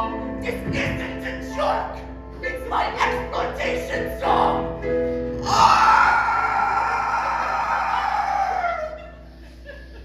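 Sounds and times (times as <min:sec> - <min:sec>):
man singing strained scream-like note: 0:05.4 - 0:08.6.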